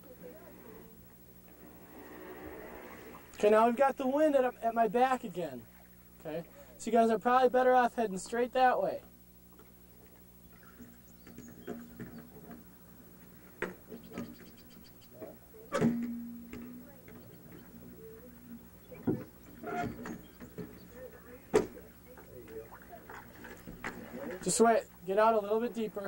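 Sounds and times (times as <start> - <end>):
faint voices: 0.0 - 5.7, 10.5 - 26.0
steady low hum: 0.0 - 26.0
sharp knocks and clunks: 15.7 - 17.7.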